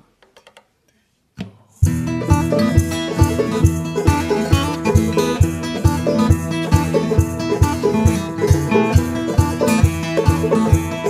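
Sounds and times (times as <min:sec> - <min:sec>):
acoustic guitar playing: 0:01.7 - 0:11.0
banjo playing: 0:01.8 - 0:11.0
low steady beat: 0:01.8 - 0:11.0.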